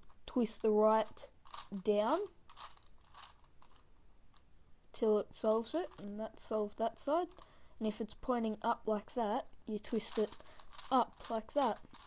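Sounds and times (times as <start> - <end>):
soft rattles: 0.0 - 4.5, 10.0 - 12.0
plastic gears clicking and scraping: 9.9 - 12.0.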